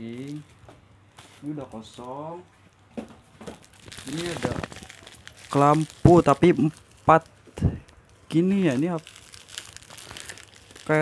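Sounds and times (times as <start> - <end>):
plastic packaging crinkling: 0.0 - 0.6, 2.7 - 11.0.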